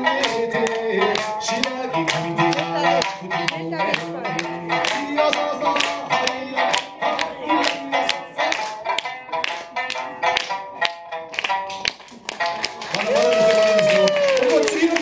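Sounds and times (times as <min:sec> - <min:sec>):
plucked lute: 0:00.0 - 0:12.8.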